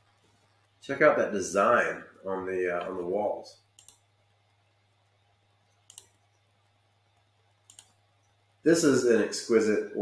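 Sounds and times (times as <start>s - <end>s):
computer mouse double clicks: 5.9s - 6.1s, 7.7s - 7.9s.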